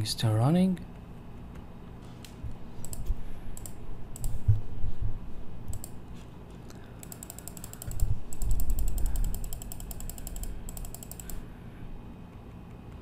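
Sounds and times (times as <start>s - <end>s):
mouse scroll wheel clicks: 2.8s - 4.4s, 5.7s - 6.0s, 7.0s - 11.4s.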